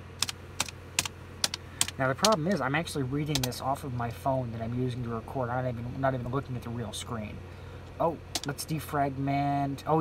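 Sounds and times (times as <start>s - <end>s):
low steady hum: 0.0s - 10.0s
computer keyboard key clicks: 0.2s - 2.4s.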